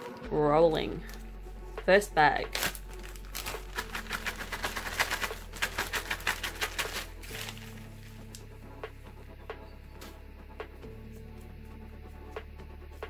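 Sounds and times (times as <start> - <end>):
soft background music: 0.0 - 13.0
plastic bag crinkling: 2.5 - 8.4.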